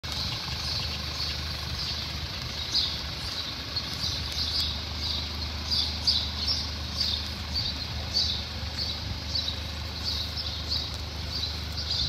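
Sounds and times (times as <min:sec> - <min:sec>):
birds chirping: 0:00.0 - 0:12.0
car engine idling: 0:00.0 - 0:12.0.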